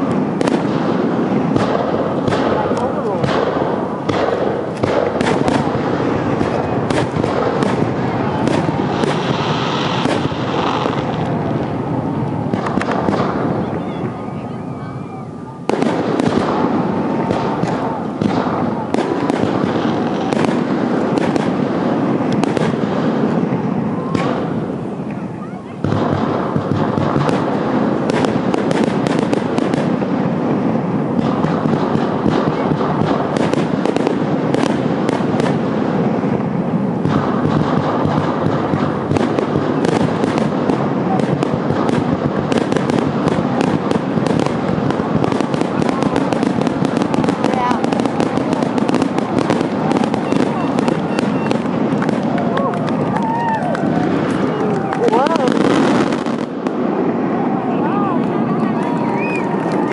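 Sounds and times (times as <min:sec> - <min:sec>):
fireworks bursting and crackling: 0:00.0 - 0:59.9.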